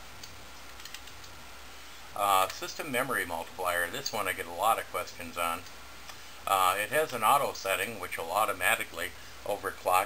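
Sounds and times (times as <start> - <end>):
keyboard key clicks: 0.2 - 1.4.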